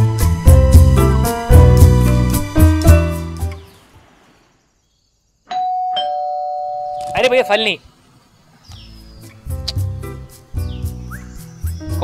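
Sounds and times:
two-note doorbell chime: 5.5s - 7.6s.

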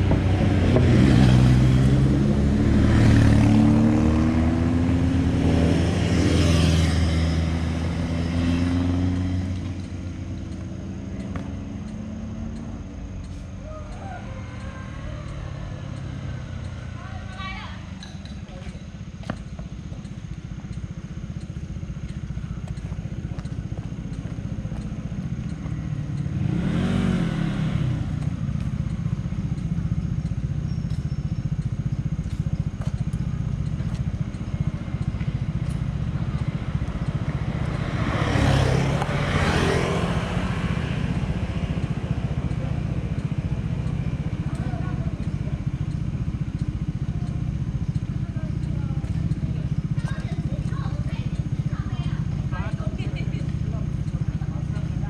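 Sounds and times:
motorcycle engine idling: 0.0s - 55.0s
vehicles passing by: 0.0s - 55.0s.

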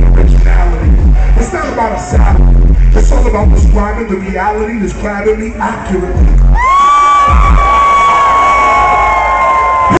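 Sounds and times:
concert crowd cheering: 0.4s - 3.5s, 6.1s - 10.0s.

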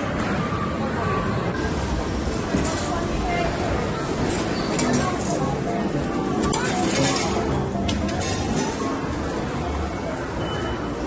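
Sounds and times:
arcade machine noise: 0.7s - 11.0s.

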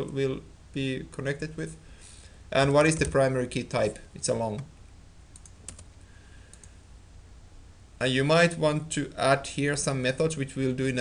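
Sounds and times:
low steady hum: 0.0s - 11.0s
computer keyboard keystroke: 5.4s - 5.9s.

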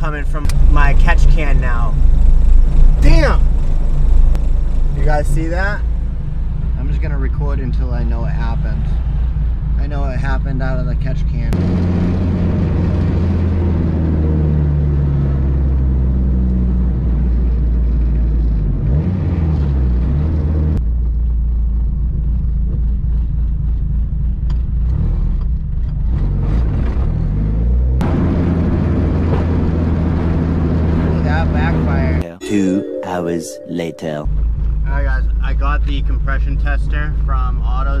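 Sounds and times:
car engine droning: 0.0s - 32.2s.

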